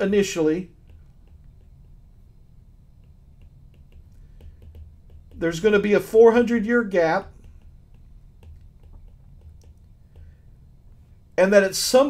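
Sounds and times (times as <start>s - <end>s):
stylus tapping on tablet screen: 0.0s - 11.3s
low steady hum: 0.0s - 12.0s.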